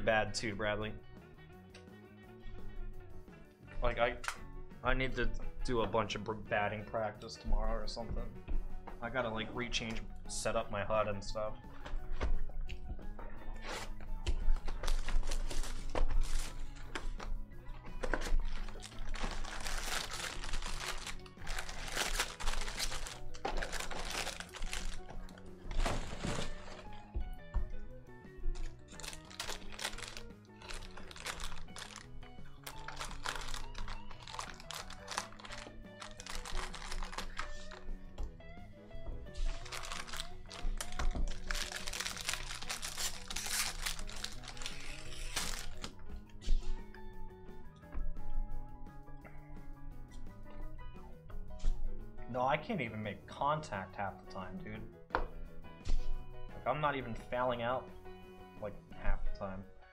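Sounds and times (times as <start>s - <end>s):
background music: 0.0s - 59.9s
foil wrappers being torn open: 14.6s - 17.2s, 18.0s - 27.0s, 28.6s - 37.9s, 39.4s - 45.9s.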